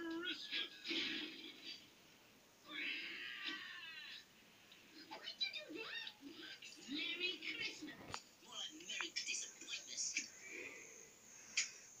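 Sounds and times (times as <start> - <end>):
cartoon cat meow-like vocalization: 2.7 - 4.3.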